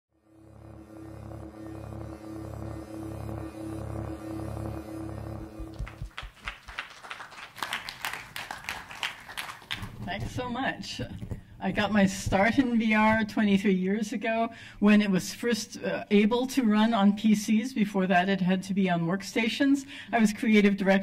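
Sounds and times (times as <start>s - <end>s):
pulsing bass drone: 0.1s - 6.4s
held electronic tones: 0.3s - 6.1s.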